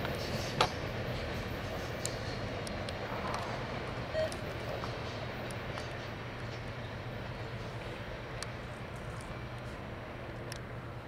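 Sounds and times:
train wheels on rails: 0.0s - 11.0s.

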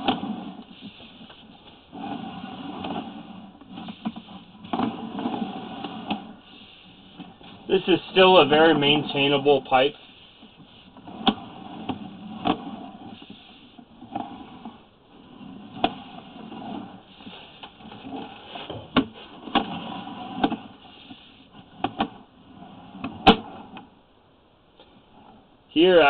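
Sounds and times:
faint steady hiss: 2.8s - 11.4s.

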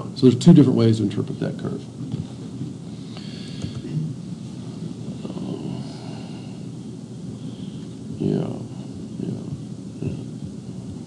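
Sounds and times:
low rumbling background noise: 0.0s - 11.0s.

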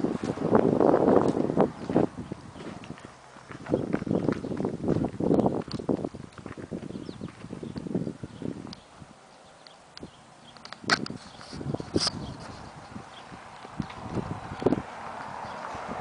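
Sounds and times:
wind gusts on microphone: 0.0s - 9.3s, 10.0s - 16.0s
footsteps on pavement: 0.0s - 16.0s.

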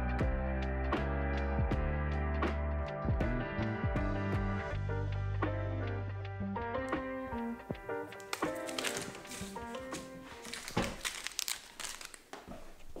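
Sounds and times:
foil wrappers crinkling: 8.0s - 12.9s.

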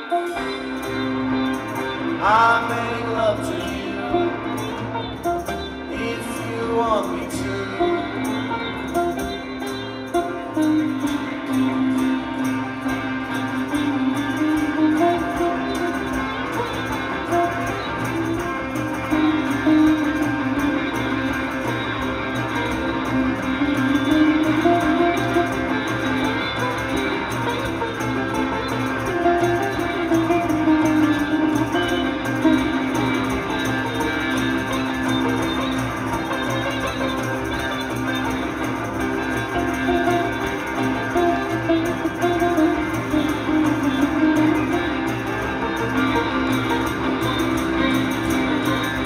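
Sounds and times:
drums: 0.0s - 49.0s
electric guitar: 0.0s - 49.0s
sitar gliding phrases: 0.0s - 49.0s
steady drone: 0.0s - 49.0s.

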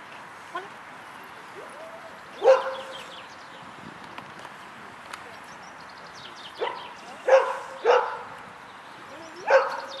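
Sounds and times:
dog barking: 2.4s - 2.9s, 6.6s - 8.3s, 9.5s - 10.0s.

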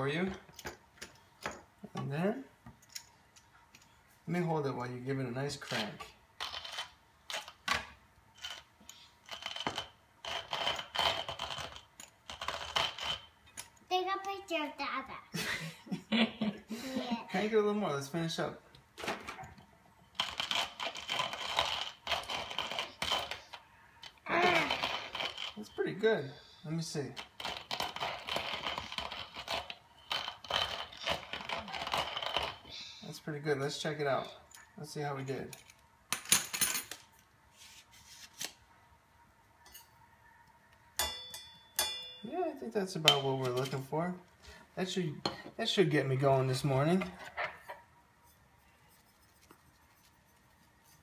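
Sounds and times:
coffee grinder crunching beans: 5.6s - 7.7s, 8.3s - 13.4s, 20.1s - 25.7s, 26.8s - 32.7s.

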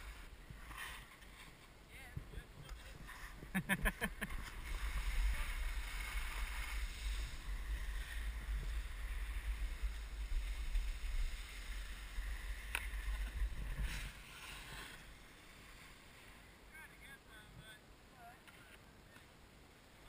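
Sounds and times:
skis scraping over packed snow: 0.0s - 17.5s.

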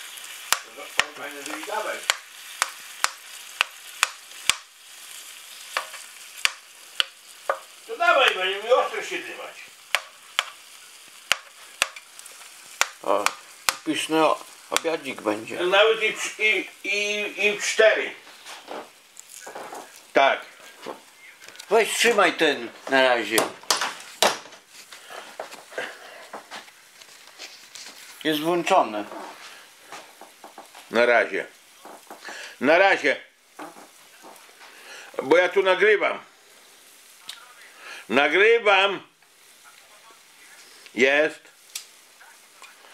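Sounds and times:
food sizzling in a pan: 0.0s - 42.9s.

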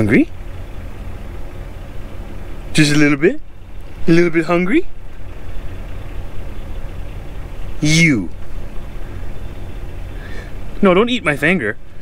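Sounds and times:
truck diesel engine idling: 0.0s - 12.0s.

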